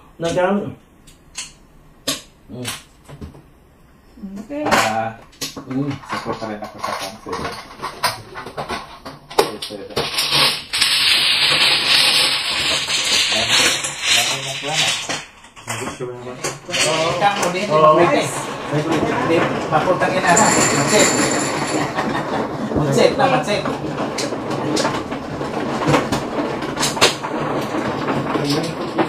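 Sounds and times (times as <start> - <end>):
plastic tiles clattering: 5.4 - 29.0
voices chatting: 15.7 - 24.6.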